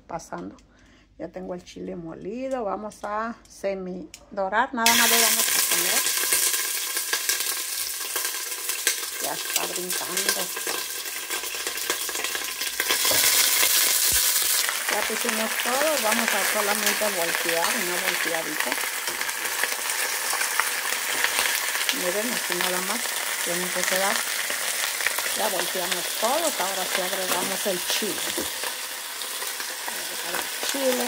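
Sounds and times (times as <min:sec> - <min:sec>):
fish sizzling in hot oil: 0:04.9 - 0:31.0
oil crackling and popping: 0:04.9 - 0:31.0.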